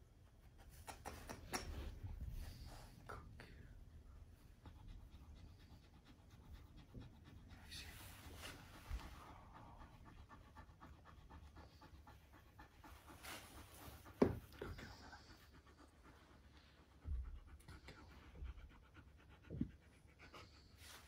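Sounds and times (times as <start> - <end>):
dog panting: 0.0 - 21.0.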